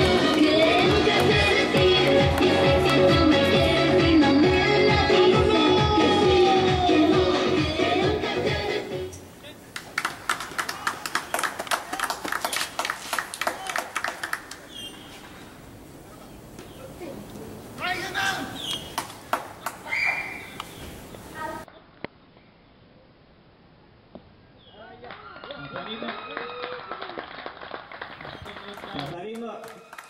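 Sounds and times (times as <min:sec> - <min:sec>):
music: 0:00.0 - 0:09.2.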